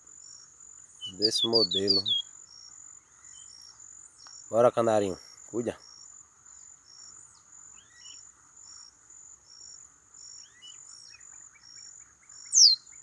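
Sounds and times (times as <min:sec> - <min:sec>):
insects chirping: 0:00.0 - 0:13.0
faint bird chirps: 0:00.2 - 0:13.0.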